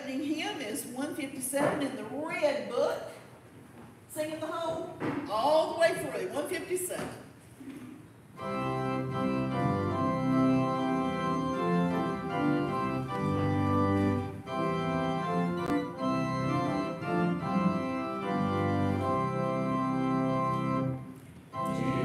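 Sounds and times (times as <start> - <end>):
organ playing sustained chords: 8.4 - 22.0
congregation singing: 21.6 - 22.0.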